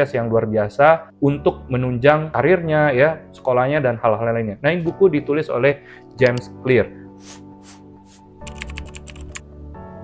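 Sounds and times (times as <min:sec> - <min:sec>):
background music: 0:00.0 - 0:10.0
keyboard key clicks: 0:08.5 - 0:09.4.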